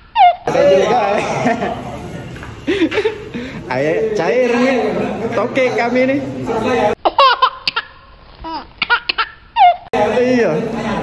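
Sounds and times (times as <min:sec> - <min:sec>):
high-pitched giggling laughter: 0:07.0 - 0:09.9.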